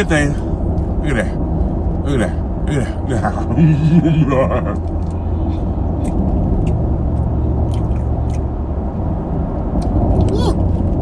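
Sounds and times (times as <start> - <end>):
car road and engine rumble: 0.0 - 11.0
mouth chewing clicks: 7.6 - 8.5.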